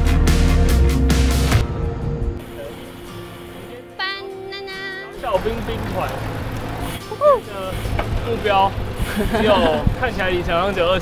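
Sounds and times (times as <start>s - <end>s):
background music: 0.0s - 11.0s
wind and riding noise: 5.2s - 11.0s
people exclaiming: 7.1s - 7.5s.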